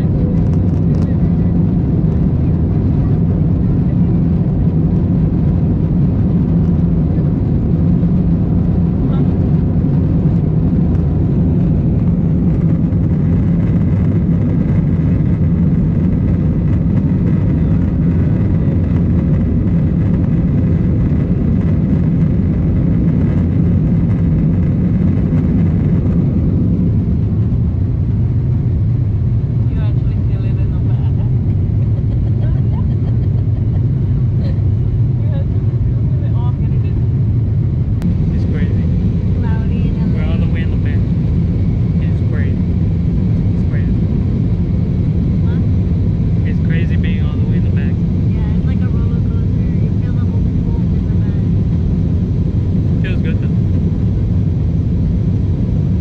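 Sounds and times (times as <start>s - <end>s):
jet engine rumble in cabin: 0.0s - 56.0s.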